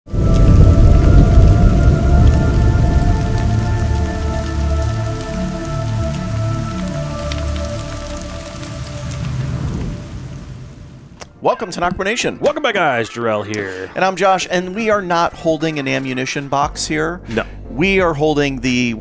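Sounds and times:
held chord of tones: 0.1 - 9.1
deep rumble: 0.1 - 11.2
crackling: 0.1 - 11.4.

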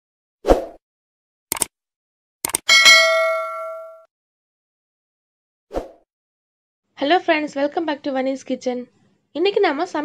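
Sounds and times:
bright bell ding: 2.7 - 4.1.

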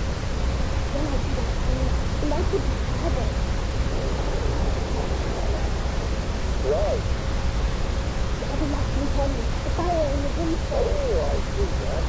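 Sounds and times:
hiss and rumble of surface noise: 0.0 - 12.0.

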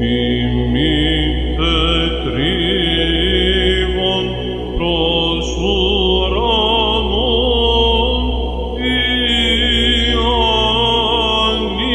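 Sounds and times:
electronic drone: 0.0 - 11.9.

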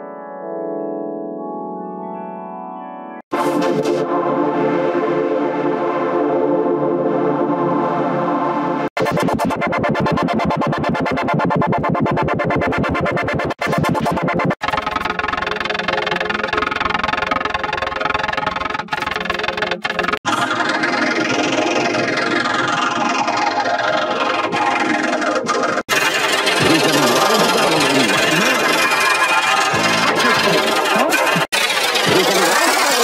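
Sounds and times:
distorted intro jingle: 25.9 - 33.0
warbling sweeping sound: 25.9 - 33.0.

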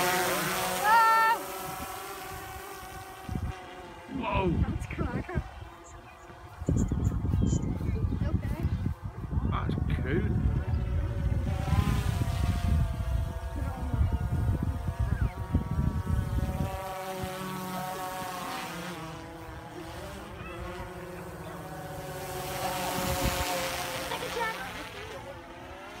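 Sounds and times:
drone propellers whining: 0.0 - 26.0
wind rumbling on microphone: 1.4 - 21.2, 21.8 - 26.0.

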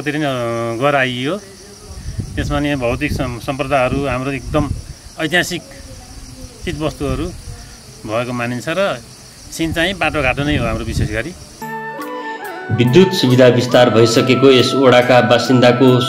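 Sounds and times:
insects chirring: 0.0 - 11.9
man talking: 9.6 - 11.4, 12.7 - 16.0
music: 11.6 - 16.0.

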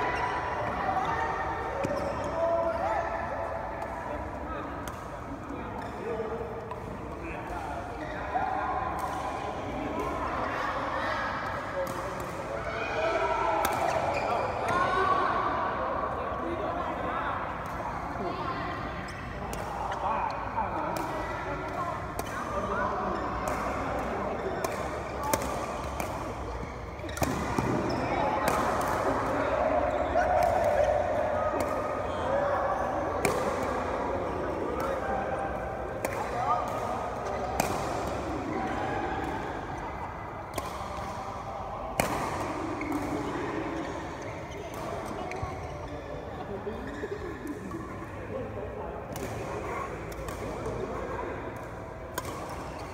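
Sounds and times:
racket striking shuttlecock: 51.6 - 52.9.

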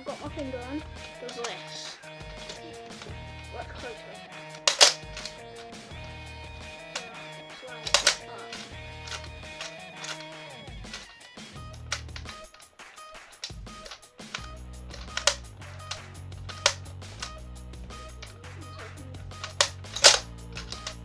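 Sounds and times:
background music with steady beat: 0.0 - 21.0
toy blaster mechanism clacking: 1.0 - 3.2, 4.4 - 12.7, 13.3 - 18.4, 19.2 - 21.0.

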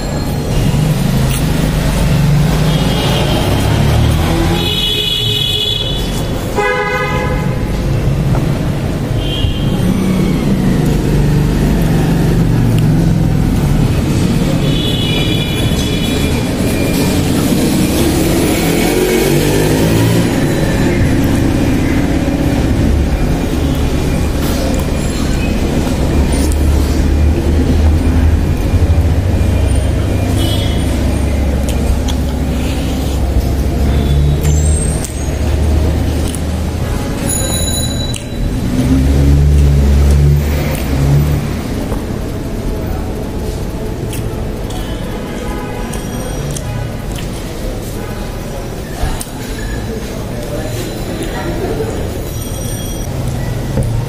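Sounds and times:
vehicle passing: 0.0 - 5.0, 7.4 - 37.4
engine rumble: 0.0 - 6.6, 7.4 - 54.0
car horn toots: 4.4 - 7.7, 14.5 - 16.9, 29.7 - 31.1.

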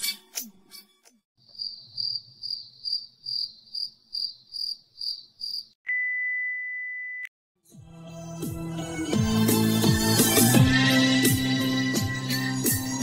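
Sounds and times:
crickets chirping: 1.5 - 5.7
high-pitched test tone beep: 5.9 - 7.3.

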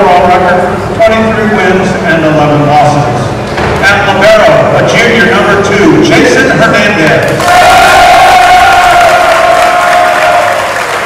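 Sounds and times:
man on public address system: 0.0 - 7.3.

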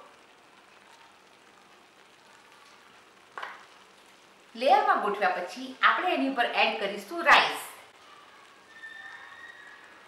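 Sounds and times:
faint sizzling in a pan: 0.0 - 10.0.

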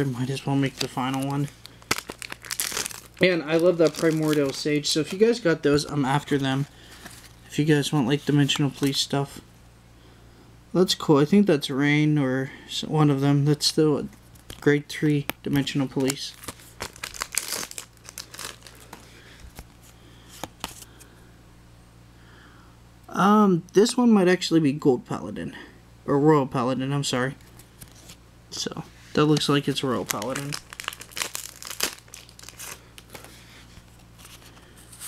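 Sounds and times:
foil wrapper crinkling: 0.1 - 5.5, 15.9 - 20.9, 29.3 - 35.0.

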